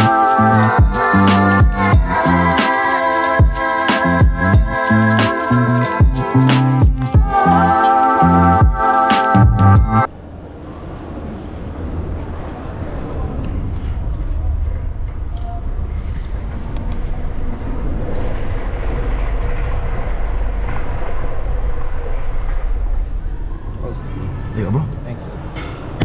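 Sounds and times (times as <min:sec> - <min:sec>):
rumbling rush down tube slide: 0:12.2 - 0:23.9.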